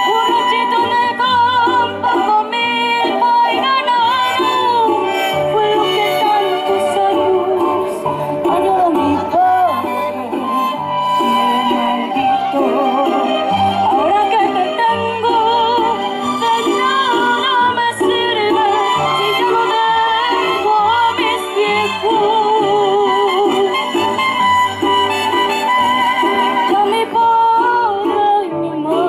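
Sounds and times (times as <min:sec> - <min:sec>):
person singing into a microphone: 0:00.0 - 0:24.0, 0:26.5 - 0:29.0
musical accompaniment with bass: 0:00.0 - 0:29.0
girl singing into a microphone: 0:26.7 - 0:29.0.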